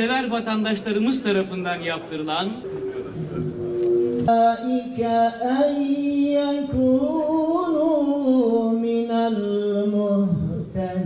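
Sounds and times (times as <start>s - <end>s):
man chanting into a microphone: 4.2s - 11.0s.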